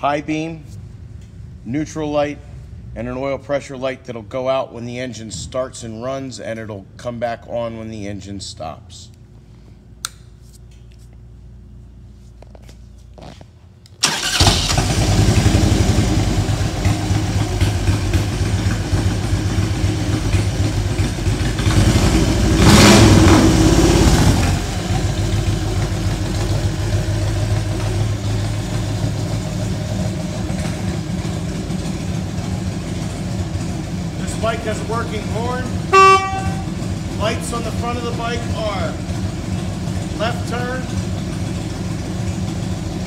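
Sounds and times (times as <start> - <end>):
motorcycle engine starting and idling: 13.9 - 43.0
motorcycle engine revving: 14.0 - 40.1.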